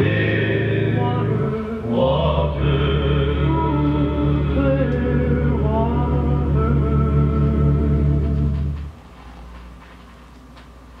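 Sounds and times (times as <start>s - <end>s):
vocal group held chord: 0.0s - 8.4s
faint vinyl crackles: 8.2s - 11.0s.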